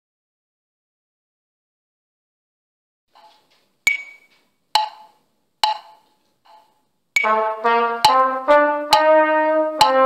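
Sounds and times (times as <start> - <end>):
woodblock-like metronome clicks: 3.9 - 10.0
faint metronome tick: 4.8 - 5.0, 5.6 - 5.9, 7.2 - 10.0.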